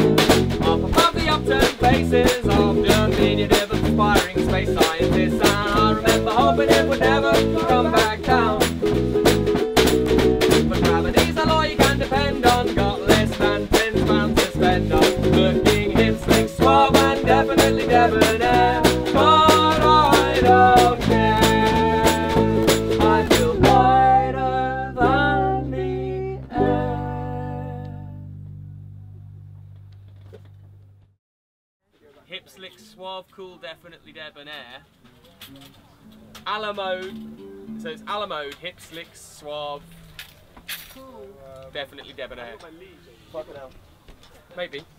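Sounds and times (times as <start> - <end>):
small strummed stringed instrument: 0.0 - 30.6, 35.5 - 40.8
acoustic guitar: 0.0 - 31.1, 35.2 - 41.5
person singing: 0.6 - 8.8, 10.5 - 28.3.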